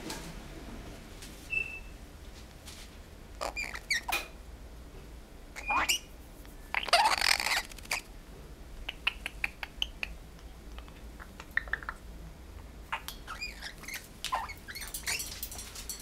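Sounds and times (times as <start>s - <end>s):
parrot harsh squawk: 3.4s - 4.2s, 5.6s - 6.1s, 6.7s - 8.0s
parrot squeaky calls: 3.4s - 4.2s, 5.6s - 6.1s, 6.7s - 8.1s, 12.9s - 15.4s.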